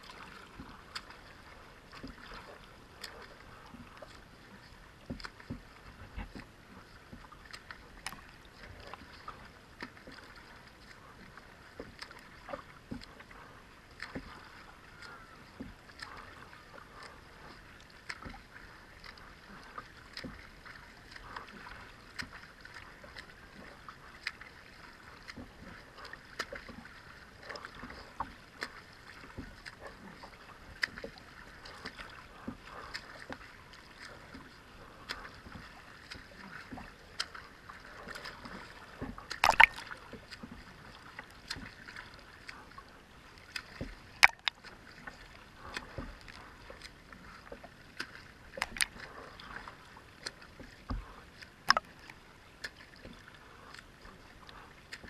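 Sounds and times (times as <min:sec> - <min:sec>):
paddle and arm stroke splashes: 0:00.0 - 0:55.0
steady wash of water: 0:00.0 - 0:55.0.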